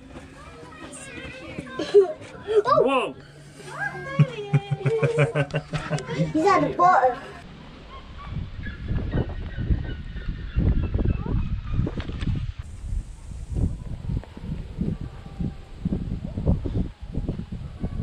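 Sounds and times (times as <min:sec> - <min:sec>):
wind buffeting microphone: 0:07.5 - 0:18.0.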